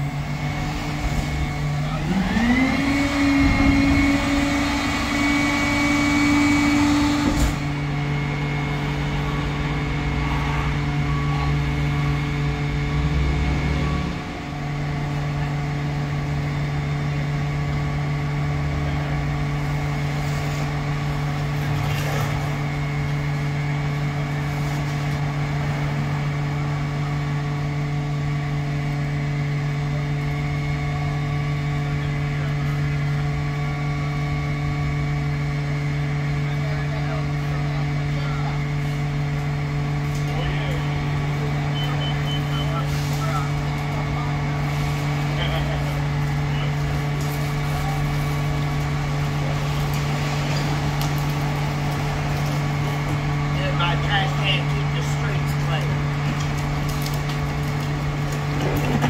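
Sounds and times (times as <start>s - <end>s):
engine humming: 0.0s - 59.0s
motor note rising in pitch: 1.7s - 14.2s.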